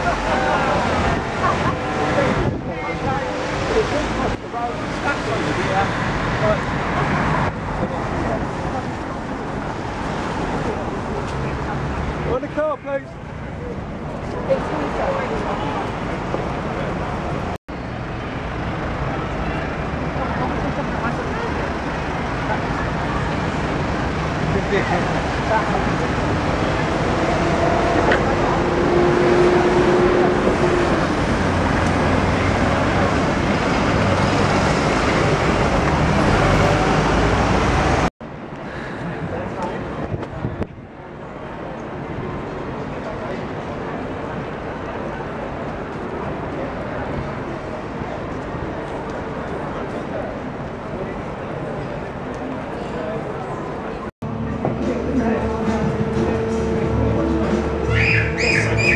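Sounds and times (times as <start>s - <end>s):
road traffic: 0.0s - 58.9s
voices of passers-by: 0.0s - 58.9s.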